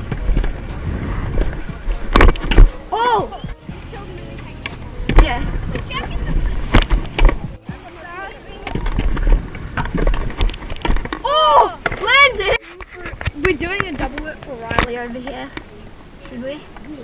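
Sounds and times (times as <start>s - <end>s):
scooter wheels rolling on concrete: 0.0s - 17.0s.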